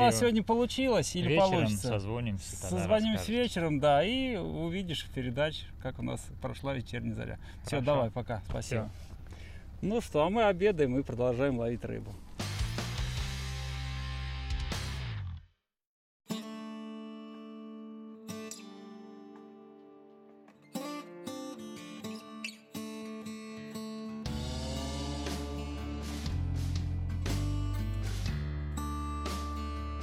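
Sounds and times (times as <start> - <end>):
bass: 0.0 - 15.6, 24.2 - 30.0
background music: 12.4 - 15.4, 18.9 - 30.0.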